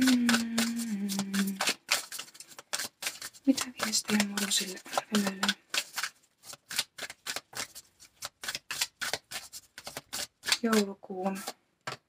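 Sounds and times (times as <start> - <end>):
cards being shuffled: 0.0 - 12.0.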